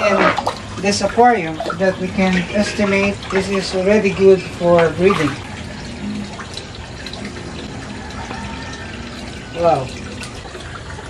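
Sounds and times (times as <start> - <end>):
water streaming and splashing: 0.0 - 11.0.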